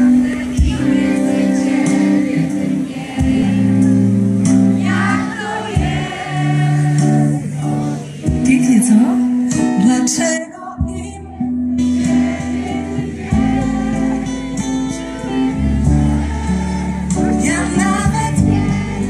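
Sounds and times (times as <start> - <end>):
audience singing along: 0.0 - 8.5, 9.4 - 19.0
keyboard and bass notes: 0.0 - 19.0
live band slow song: 0.0 - 19.0
singer singing: 0.0 - 19.0.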